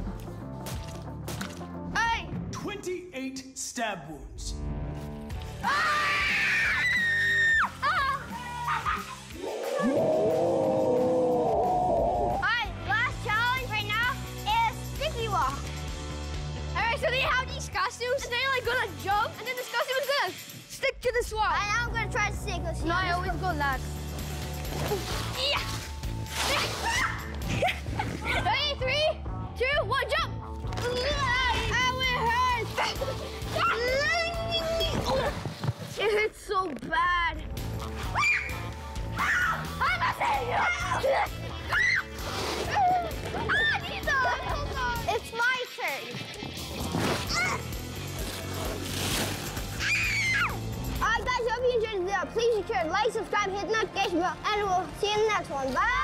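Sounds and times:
background music: 0.0s - 56.0s
water balloon bursting: 0.6s - 1.8s, 24.6s - 28.0s
child crying and wailing: 5.6s - 11.6s, 26.5s - 27.3s, 42.7s - 44.6s
child screaming: 5.6s - 12.6s, 26.5s - 27.2s, 41.7s - 42.0s, 42.9s - 44.0s, 49.8s - 50.6s.

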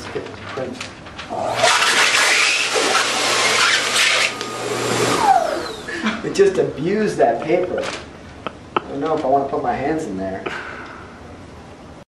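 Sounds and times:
hand dryer air rushing: 1.4s - 6.4s.

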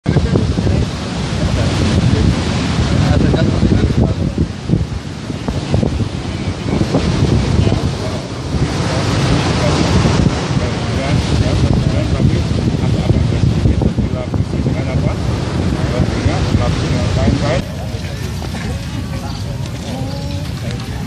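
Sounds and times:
beach surf: 0.0s - 21.0s
wind buffeting microphone: 0.0s - 21.0s
indistinct voices: 0.1s - 21.0s.

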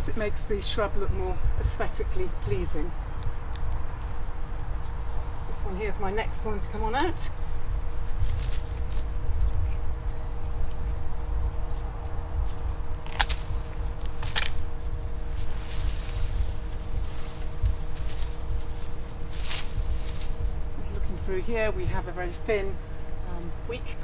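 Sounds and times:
faint hum: 0.0s - 24.0s
steady low rumble: 0.0s - 24.0s
pruning shears snipping stems: 12.4s - 14.7s.

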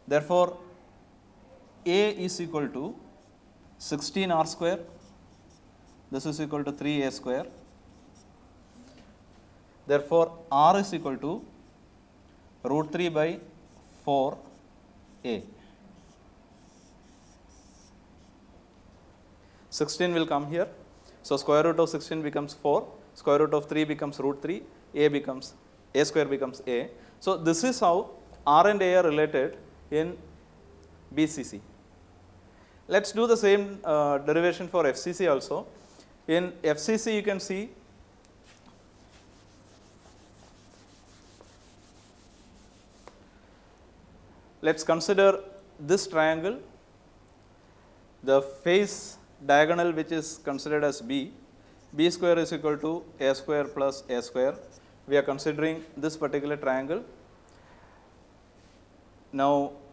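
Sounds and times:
low room hum: 0.0s - 59.9s
soft rubbing: 4.0s - 6.4s, 7.1s - 8.9s, 13.6s - 15.4s, 16.0s - 18.4s, 38.4s - 43.2s
marker pen scratching on whiteboard: 4.4s - 6.2s, 7.4s - 8.3s, 13.6s - 15.4s, 16.0s - 18.4s, 38.4s - 43.2s.

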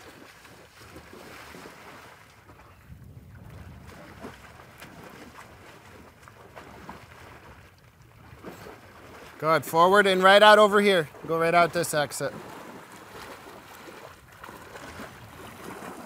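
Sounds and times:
horse splashing through water: 0.0s - 16.0s
wind on the microphone: 2.4s - 9.2s, 14.0s - 16.0s.

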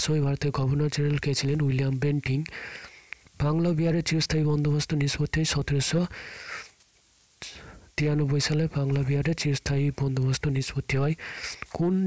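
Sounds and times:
soft breath: 2.5s - 3.3s, 6.1s - 6.8s, 7.4s - 8.0s, 11.2s - 11.8s.

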